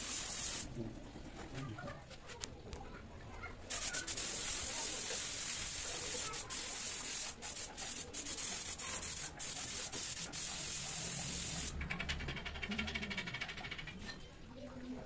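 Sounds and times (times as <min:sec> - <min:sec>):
paint spray gun hissing: 0:00.0 - 0:00.7, 0:03.7 - 0:11.7
fast rattle: 0:11.0 - 0:14.0.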